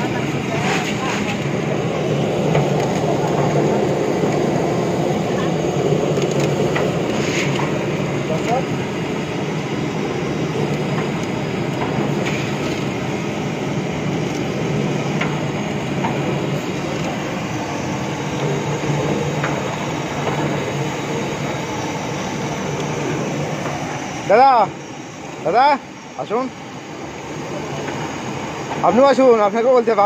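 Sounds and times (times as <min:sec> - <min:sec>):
roasting machine rumble: 0:00.0 - 0:30.0.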